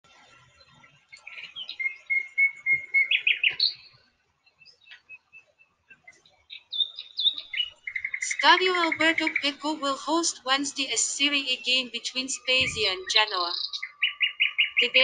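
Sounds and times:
bird chirping: 0:00.4 - 0:15.0.

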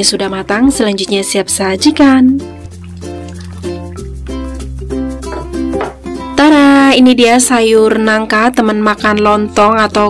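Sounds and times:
woman speaking: 0:00.0 - 0:02.4, 0:06.4 - 0:10.0
plucked-string music: 0:01.8 - 0:06.5.

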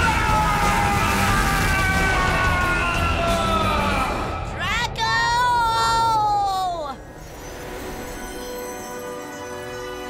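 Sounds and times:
cartoon boy shouting: 0:04.7 - 0:07.0
background music with held notes: 0:07.6 - 0:10.0.

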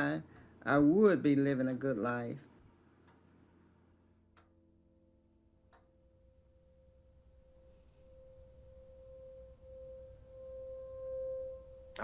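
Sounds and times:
faint low rumble: 0:00.0 - 0:12.0
sustained electronic tone: 0:03.6 - 0:12.0.

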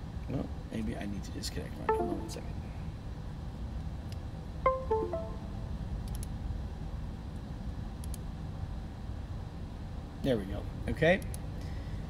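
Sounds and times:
descending three-note chime: 0:01.9 - 0:02.5, 0:04.7 - 0:05.8.

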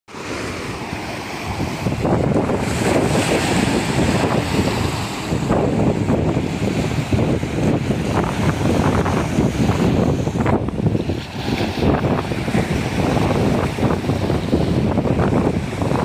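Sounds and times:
small waves washing on shore: 0:00.1 - 0:16.0
wind buffeting microphone: 0:00.1 - 0:16.0.

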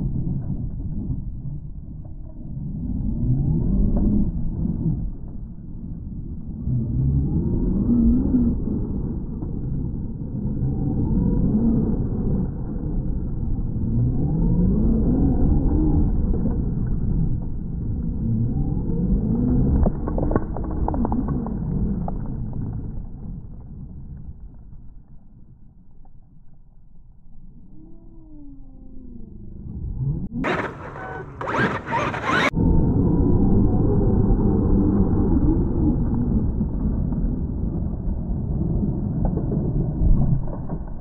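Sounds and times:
electric motor low drone: 0:00.0 - 0:41.0
low rumble: 0:00.0 - 0:41.0
electric motor whining: 0:30.4 - 0:32.6.

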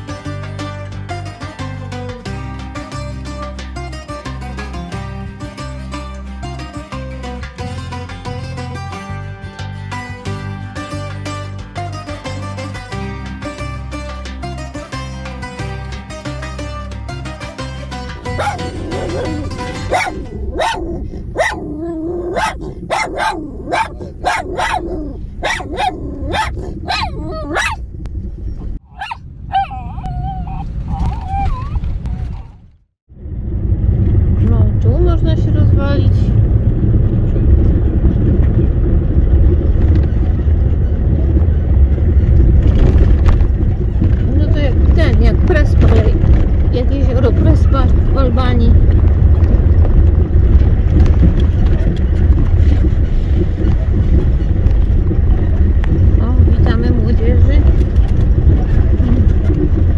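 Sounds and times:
vehicle driving on dirt track: 0:00.0 - 0:59.9
dog barking: 0:18.3 - 0:27.8, 0:28.9 - 0:30.1.

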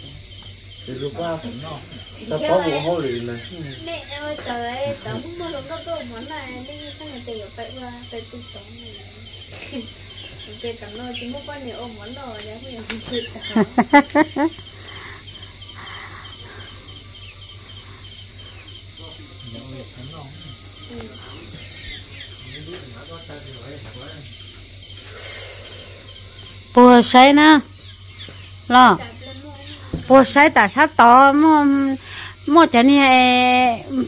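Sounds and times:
insects chorus: 0:00.0 - 0:34.0.

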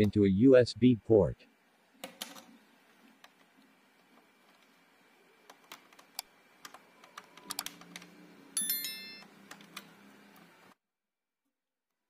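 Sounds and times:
bright bell ding: 0:08.6 - 0:09.3.

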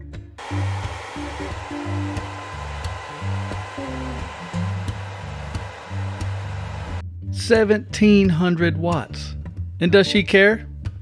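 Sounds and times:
hair dryer blowing: 0:00.4 - 0:07.0
guitar music: 0:00.4 - 0:10.2.

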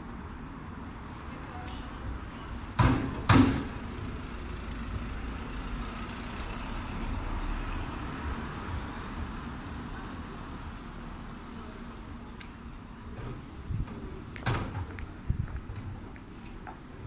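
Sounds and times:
low hum of traffic: 0:00.0 - 0:17.0.

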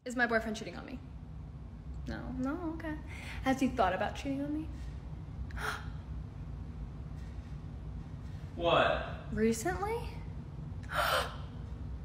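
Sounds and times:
woman gasping: 0:10.8 - 0:11.5.

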